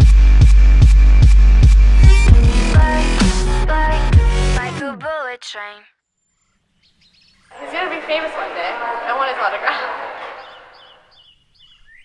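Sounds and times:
small bird chirping: 0:06.8 - 0:07.5, 0:10.4 - 0:12.0
person's voice: 0:07.5 - 0:10.6.

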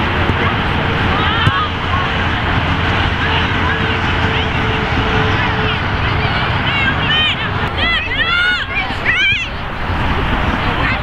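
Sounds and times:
wind rumble on microphone: 0:00.0 - 0:11.0
high-pitched voices shouting: 0:06.3 - 0:09.6.

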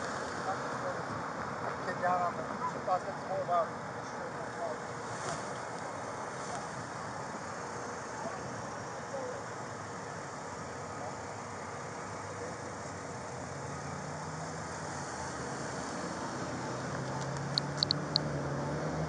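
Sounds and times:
low steady engine hum: 0:00.0 - 0:19.0
passing car traffic: 0:00.0 - 0:19.0
car passing close by: 0:13.9 - 0:19.0.

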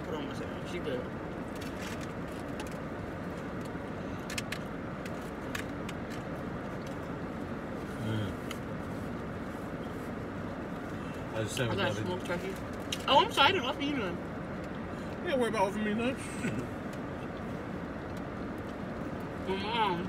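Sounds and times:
car idling: 0:00.0 - 0:20.0.

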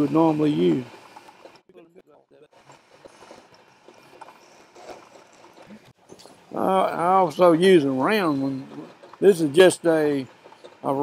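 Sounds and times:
graver scraping steel: 0:00.0 - 0:01.7, 0:02.5 - 0:11.0.

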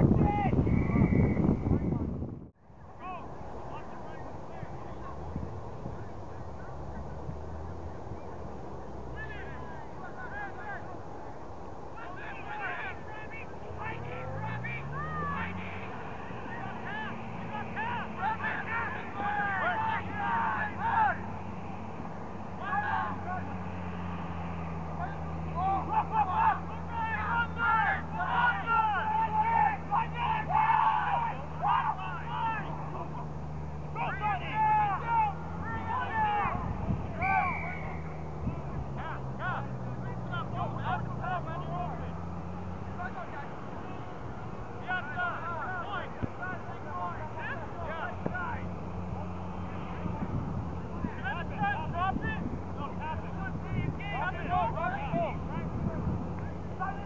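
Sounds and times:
distant shouting: 0:00.0 - 0:02.0, 0:02.7 - 0:57.0.

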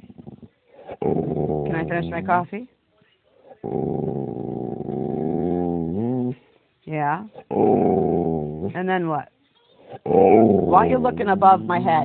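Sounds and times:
dog grumbling: 0:00.0 - 0:02.5, 0:03.4 - 0:06.4, 0:07.3 - 0:08.8, 0:09.9 - 0:12.0.

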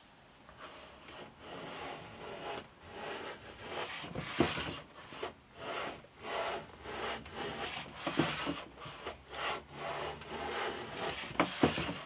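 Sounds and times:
hand plane scraping wood: 0:00.6 - 0:12.0.

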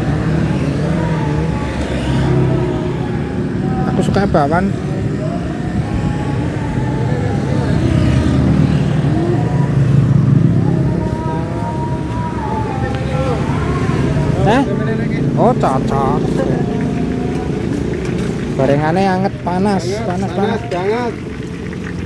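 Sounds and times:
faint voices: 0:00.0 - 0:22.0
motorcycles and cars passing: 0:00.0 - 0:22.0.

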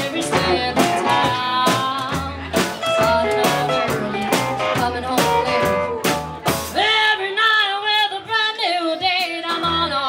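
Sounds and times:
country band playing: 0:00.0 - 0:10.0
woman singing with vibrato: 0:00.0 - 0:10.0.

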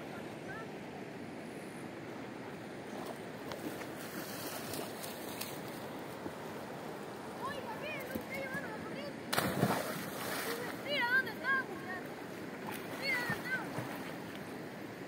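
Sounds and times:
flowing river water: 0:00.0 - 0:15.0.

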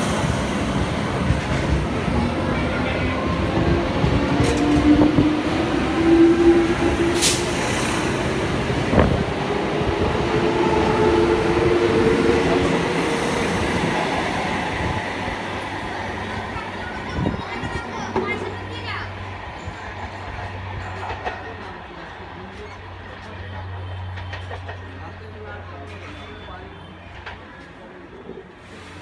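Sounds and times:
train wheels rumbling on rails: 0:00.0 - 0:26.4.

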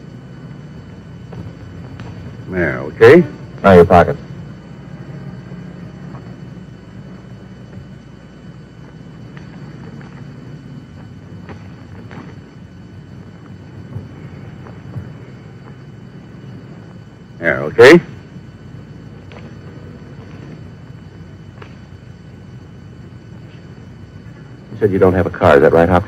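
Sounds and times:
low steady hum: 0:00.0 - 0:26.0.

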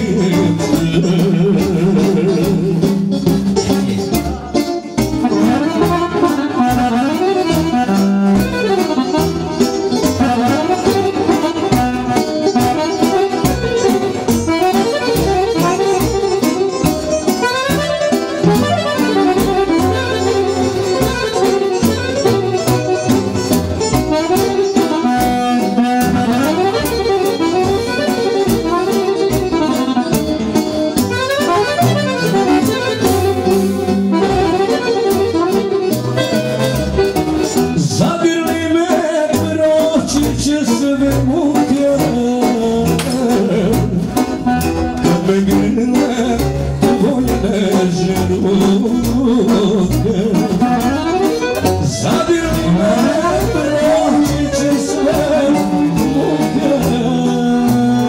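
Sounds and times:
accordion melody: 0:00.0 - 0:58.0
electronic keyboards: 0:00.0 - 0:58.0
steady drum beat: 0:00.0 - 0:58.0.

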